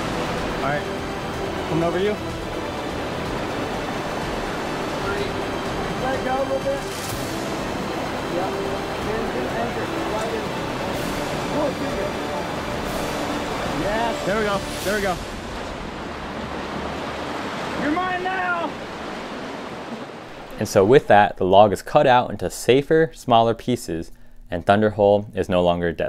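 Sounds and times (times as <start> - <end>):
whitewater rapid rushing: 0.0 - 21.3.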